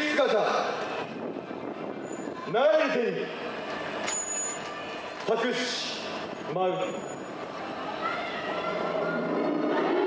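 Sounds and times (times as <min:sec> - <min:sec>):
street crowd murmur: 0:00.0 - 0:10.0.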